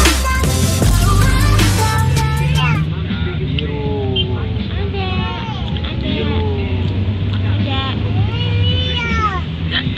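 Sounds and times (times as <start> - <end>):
high-pitched vocal sounds: 0.0 - 2.9.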